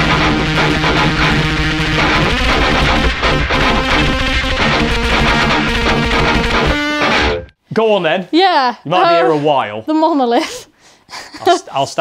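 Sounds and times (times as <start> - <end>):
distorted electric guitar riff: 0.0 - 7.6.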